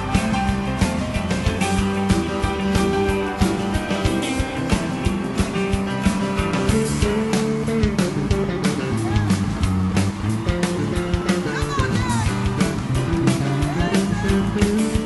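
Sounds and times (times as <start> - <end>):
bass: 0.0 - 15.0
drum beat: 0.0 - 15.0
electric guitar: 0.0 - 15.0
piano: 0.0 - 15.0.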